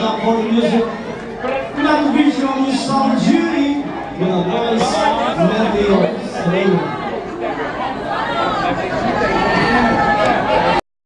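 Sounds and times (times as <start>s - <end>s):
crowd chatter: 0.0s - 10.8s
man talking over a pa: 1.8s - 7.0s.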